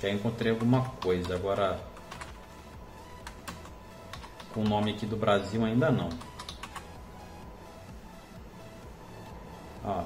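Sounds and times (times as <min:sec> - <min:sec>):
typing on computer keyboard: 0:00.3 - 0:02.4, 0:03.2 - 0:05.0, 0:06.0 - 0:06.9.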